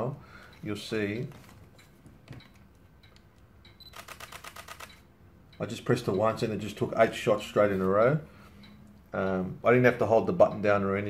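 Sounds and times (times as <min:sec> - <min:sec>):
camera shutter burst: 0:03.8 - 0:05.1.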